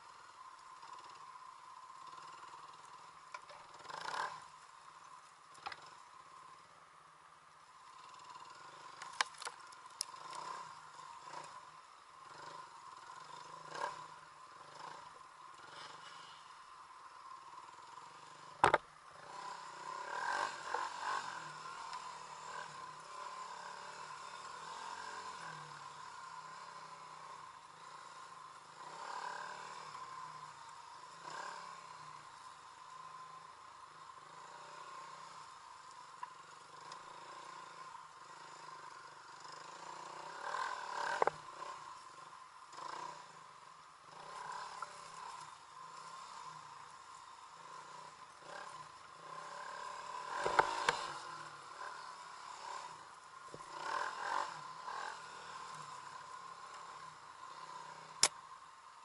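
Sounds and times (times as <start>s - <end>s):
dirt bike engine running: 17.3s - 27.2s
bike knocking on rough ground: 18.6s - 18.8s.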